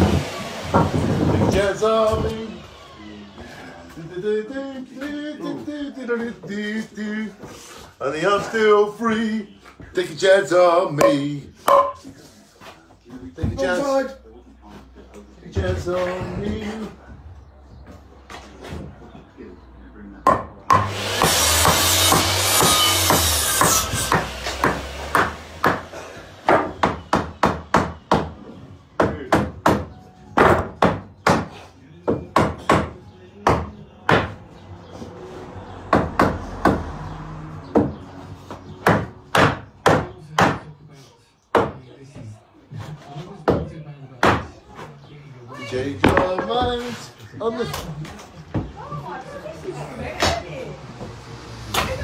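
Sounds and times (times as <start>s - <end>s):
hammer striking timber: 0.0s - 2.4s, 11.0s - 12.0s, 20.2s - 28.4s, 29.0s - 34.4s, 35.9s - 36.9s, 37.7s - 40.7s.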